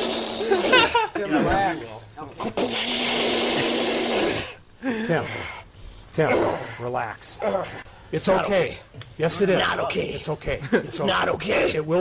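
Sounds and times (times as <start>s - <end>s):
man laughing: 0.4s - 1.6s.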